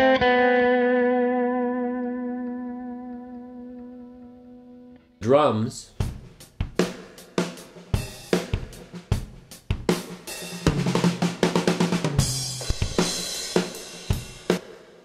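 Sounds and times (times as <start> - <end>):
drum kit beat: 5.9 - 15.0
fast run of drum hits: 7.9 - 14.8.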